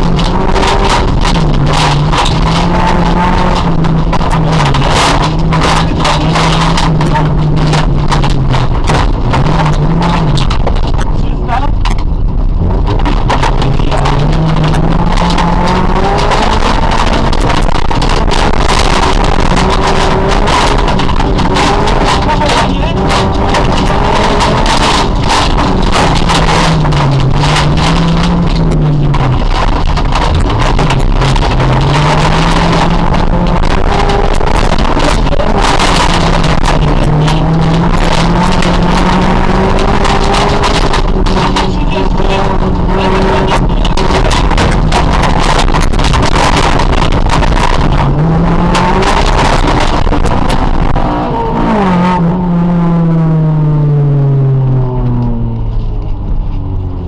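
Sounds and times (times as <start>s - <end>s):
car engine running hard: 0.0s - 57.0s
road gravel and wind noise: 0.0s - 57.0s.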